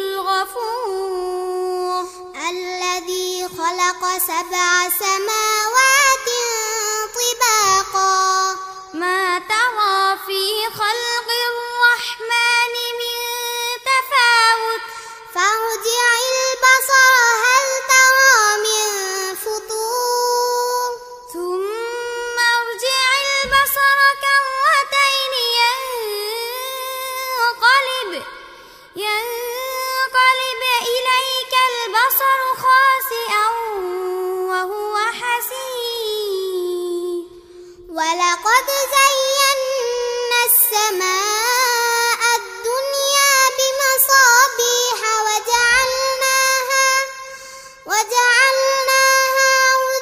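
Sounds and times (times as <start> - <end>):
girl singing: 0.0 - 50.0
breath: 2.0 - 2.3, 14.9 - 15.3, 28.4 - 29.0, 37.3 - 37.9, 47.2 - 47.9.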